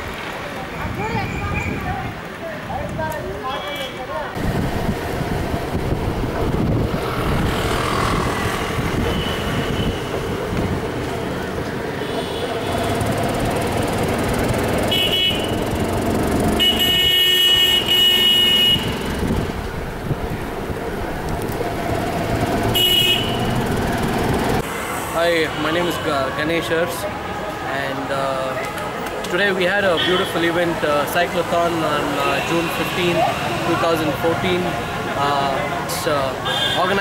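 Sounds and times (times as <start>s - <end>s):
road traffic noise: 0.0s - 37.0s
vehicle horns honking: 9.0s - 10.2s, 12.0s - 13.0s, 14.7s - 15.9s, 16.5s - 19.3s, 22.7s - 23.7s, 29.8s - 30.6s, 32.0s - 35.5s, 36.3s - 37.0s.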